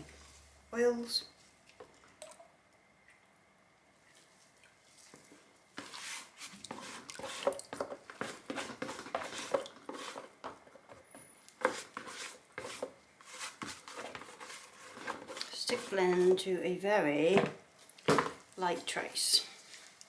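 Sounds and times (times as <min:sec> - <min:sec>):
spatula scraping plastic jug: 0:05.8 - 0:10.6, 0:11.6 - 0:16.5.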